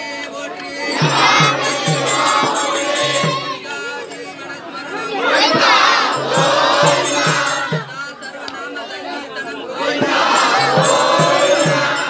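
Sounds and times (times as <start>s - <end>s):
crowd shouting together: 0.3s - 12.0s.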